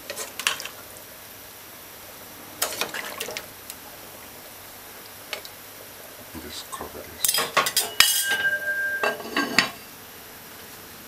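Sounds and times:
spoon and lid clanking on pot: 0:07.2 - 0:09.9.

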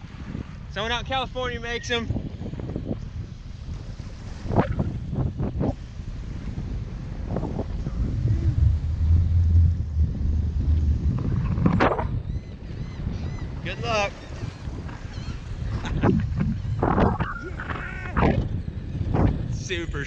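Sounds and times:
faint surf: 0:00.0 - 0:20.0
wind buffeting microphone: 0:00.0 - 0:20.0.

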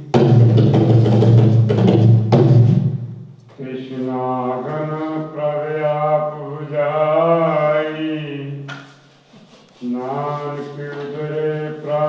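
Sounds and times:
man chanting: 0:03.5 - 0:08.8, 0:09.8 - 0:12.0.

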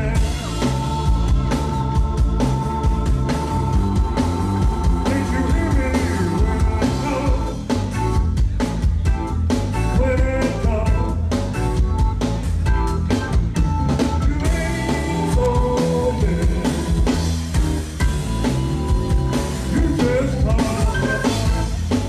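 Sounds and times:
blues-rock band playing live: 0:00.0 - 0:22.0
drum kit steady beat: 0:00.0 - 0:22.0.

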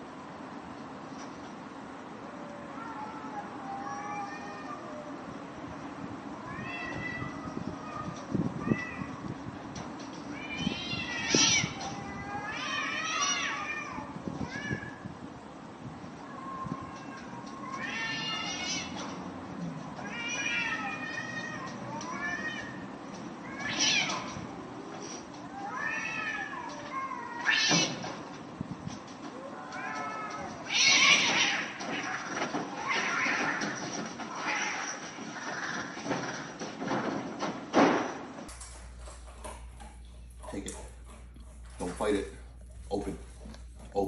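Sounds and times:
cat meowing: 0:02.4 - 0:05.2, 0:06.4 - 0:09.4, 0:10.3 - 0:15.2, 0:16.2 - 0:19.2, 0:20.0 - 0:28.2, 0:29.3 - 0:36.0.

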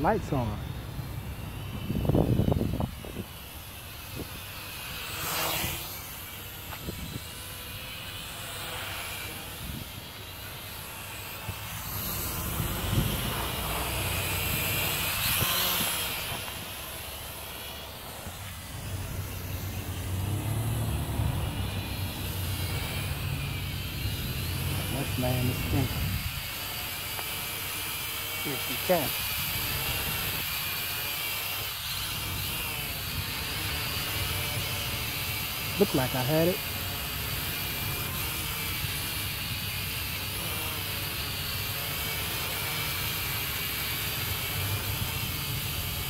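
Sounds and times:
toy quadcopter propellers whining: 0:00.0 - 0:46.0.

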